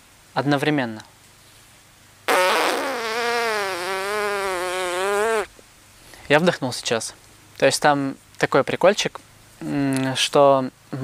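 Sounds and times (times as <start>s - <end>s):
lips buzzing: 2.3s - 5.5s.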